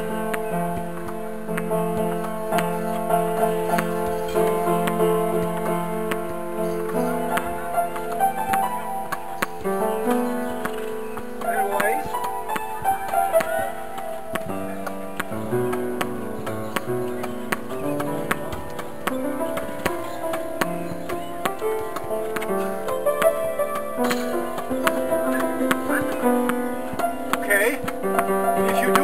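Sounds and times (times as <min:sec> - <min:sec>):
slow piano music: 0:00.0 - 0:29.0
ball clicking against racket and wall: 0:00.1 - 0:29.0.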